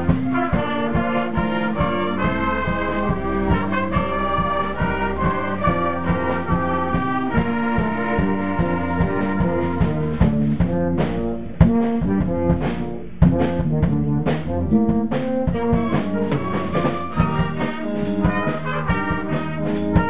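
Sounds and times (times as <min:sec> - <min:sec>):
concert band playing: 0:00.0 - 0:20.0.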